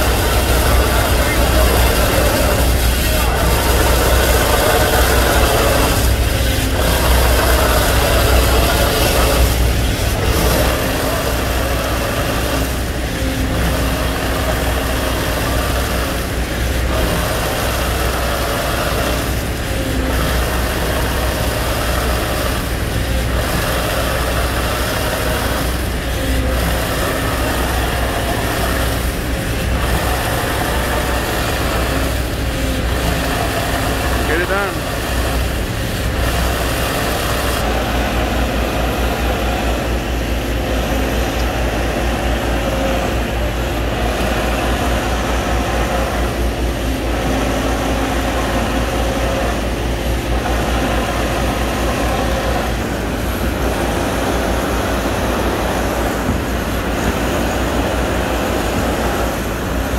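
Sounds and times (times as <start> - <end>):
engine drone: 0.0 - 59.9
pulsing hiss of sprayed concrete: 0.0 - 59.9.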